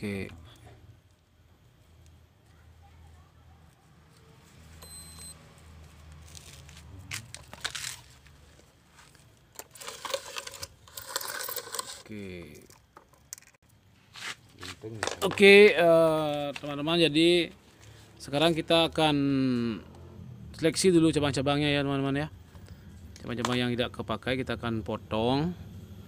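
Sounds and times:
roots and soil rustling: 5.5s - 12.4s.

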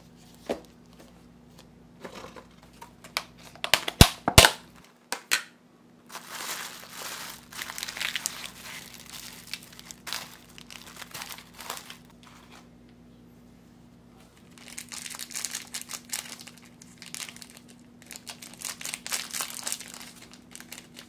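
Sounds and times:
plastic wrap crinkling and tearing: 6.1s - 12.4s, 14.4s - 21.0s.

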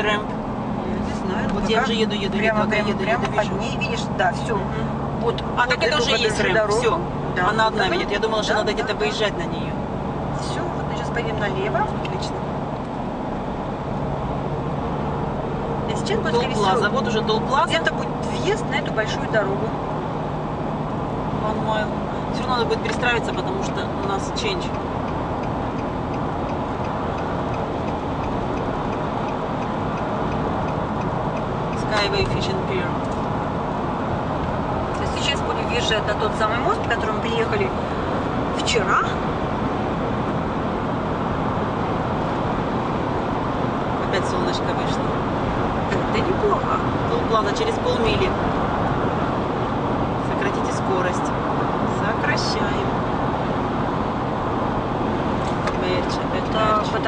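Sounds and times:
road and engine noise: 0.0s - 57.0s
turn signal ticking: 22.0s - 38.6s.

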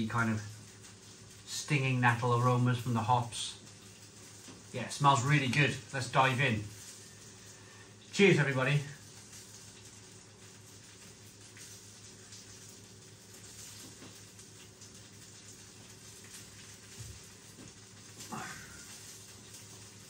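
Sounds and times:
sausage sizzling on grill: 0.0s - 20.0s.

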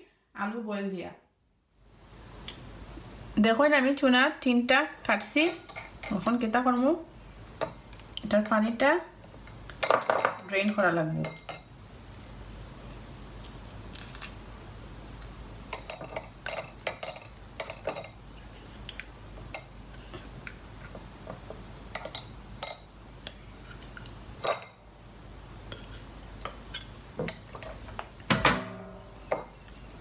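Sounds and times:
tin can clinking on sieve and bowl: 9.8s - 11.7s.

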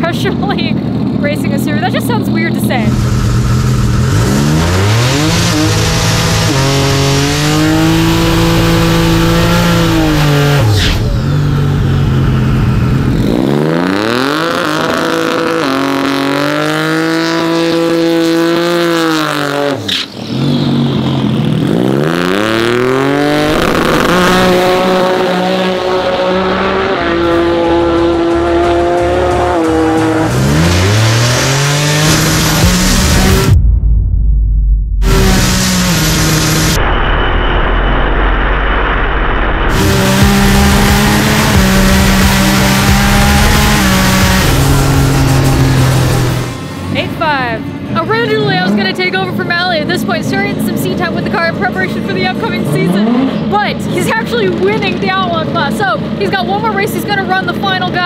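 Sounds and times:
race car engine revving: 0.0s - 33.7s, 35.0s - 58.0s
tyres spinning in burnout: 35.0s - 46.6s.

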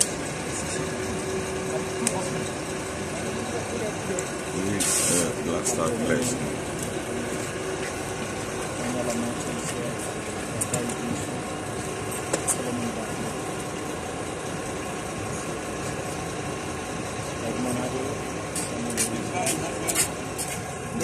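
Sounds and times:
people talking: 0.0s - 7.5s, 8.2s - 13.7s, 17.3s - 21.0s
diesel engine idling: 0.0s - 21.0s.

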